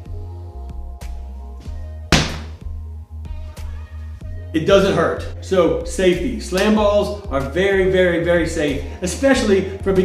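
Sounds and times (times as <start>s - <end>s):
background music: 0.0s - 10.0s
rubber ball smacking: 2.1s - 2.6s.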